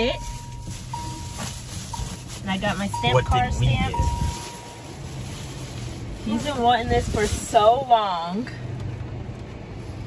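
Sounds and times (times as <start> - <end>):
car cabin rumble: 0.0 - 10.0
high steady tone: 2.8 - 4.8.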